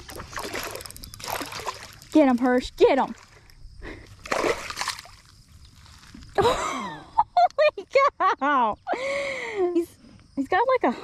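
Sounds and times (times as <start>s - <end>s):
water splashing in shallows: 0.0s - 3.5s, 4.2s - 6.1s.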